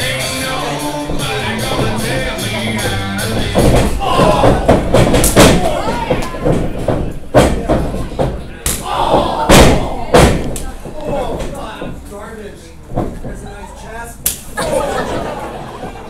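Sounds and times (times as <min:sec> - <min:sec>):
voices in a hall: 0:00.0 - 0:16.0.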